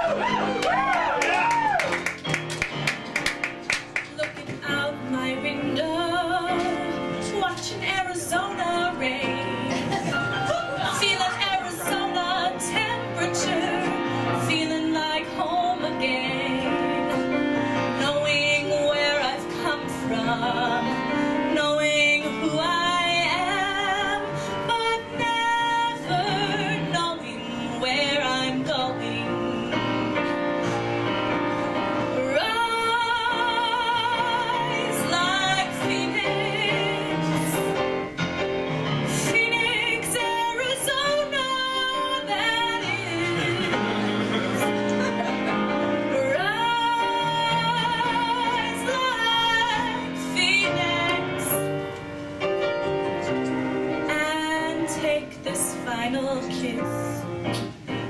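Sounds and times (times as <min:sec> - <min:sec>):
grand piano chords: 0:00.0 - 0:58.0
woman singing into a microphone: 0:04.0 - 0:30.2, 0:32.0 - 0:37.8, 0:39.0 - 0:51.8, 0:53.9 - 0:57.7.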